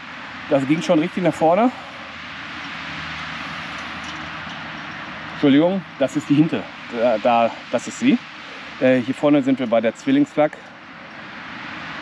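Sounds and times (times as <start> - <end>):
even rushing hiss: 0.0 - 12.0.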